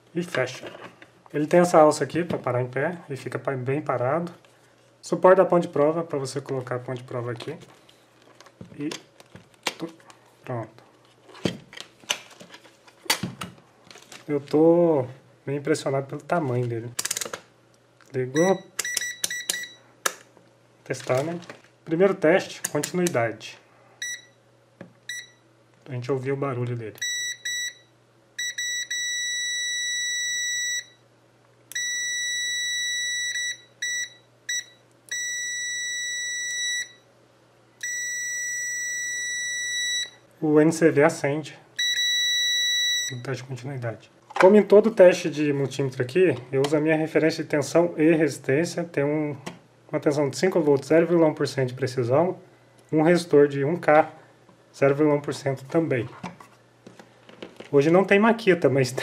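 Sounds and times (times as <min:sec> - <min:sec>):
multimeter continuity beeping: 0:18.3 - 0:19.9, 0:27.0 - 0:31.0, 0:31.7 - 0:37.0, 0:37.8 - 0:40.2, 0:41.8 - 0:43.3.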